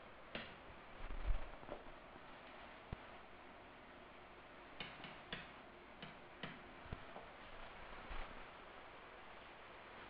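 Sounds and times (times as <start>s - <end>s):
low steady hiss: 0.0s - 10.0s.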